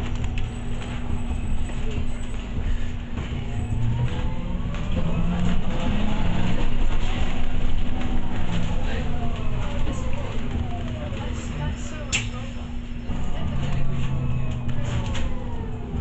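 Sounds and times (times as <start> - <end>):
bus engine rumble and hum: 0.0 - 16.0
drivetrain whine: 0.0 - 16.0.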